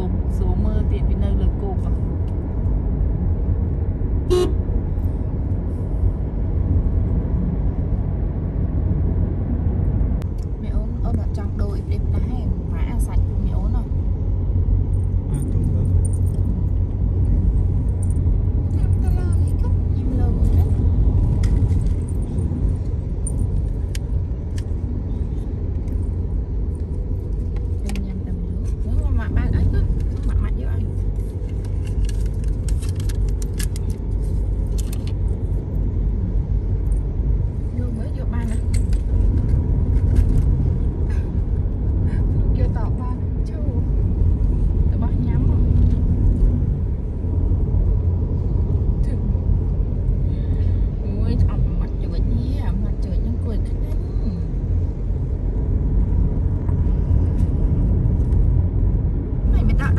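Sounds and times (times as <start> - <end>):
car tyres and engine rumble: 0.0 - 59.9.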